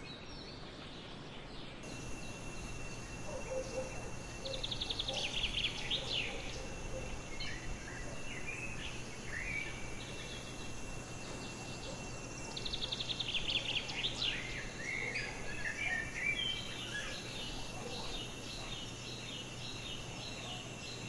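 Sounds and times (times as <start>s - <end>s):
faint background hiss: 0.0s - 21.0s
songbirds chirping and whistling: 0.0s - 21.0s
steady high-pitched tone: 1.8s - 20.3s
bird trill: 1.8s - 21.0s.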